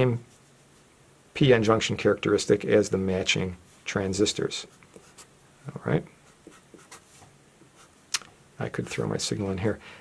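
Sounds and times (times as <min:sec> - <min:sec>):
marker scratching on paper: 0:04.6 - 0:05.3, 0:06.2 - 0:07.2.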